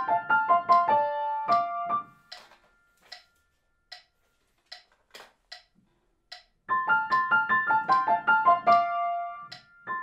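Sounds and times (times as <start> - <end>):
piano notes: 0.0 - 3.9, 6.6 - 10.0
metronome clicking: 0.0 - 10.0.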